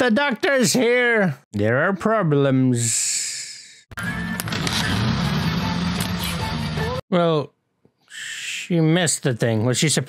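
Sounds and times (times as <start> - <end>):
music: 4.0 - 7.0.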